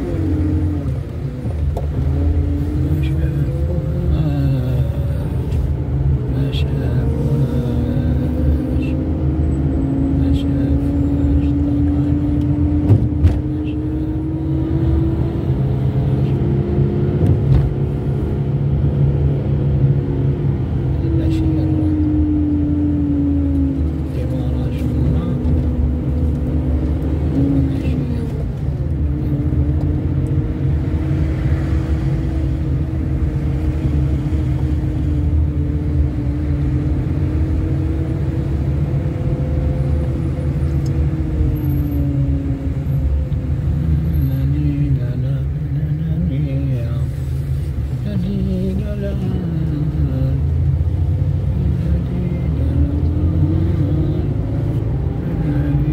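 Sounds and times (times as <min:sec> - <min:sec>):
car engine and road rumble: 0:00.0 - 0:55.9.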